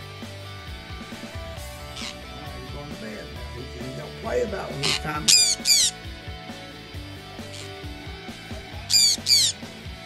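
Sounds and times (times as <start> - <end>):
quiet guitar music: 0.0 - 10.0
parrot squawks: 1.9 - 2.2, 4.8 - 6.0, 7.5 - 7.8, 8.8 - 9.6.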